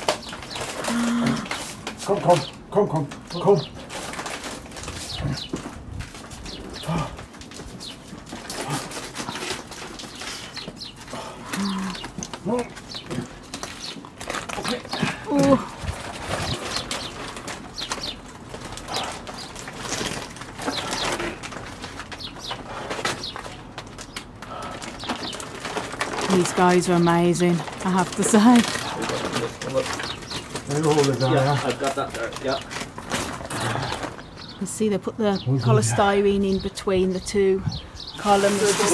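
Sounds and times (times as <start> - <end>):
plastic bag rustling: 0.0 - 34.5, 38.2 - 38.9
person grunting: 35.5 - 36.1.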